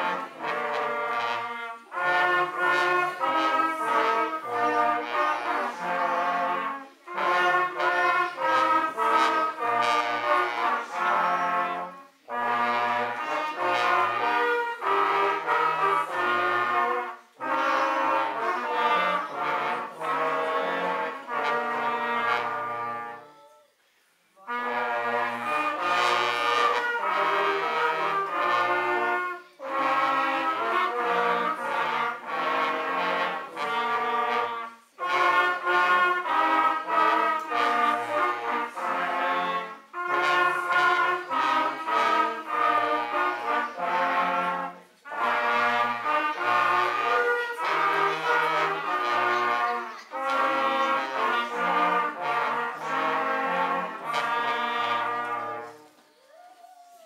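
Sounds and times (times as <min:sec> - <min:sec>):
brass ensemble playing a tune: 0:00.0 - 0:23.6, 0:24.3 - 0:56.0.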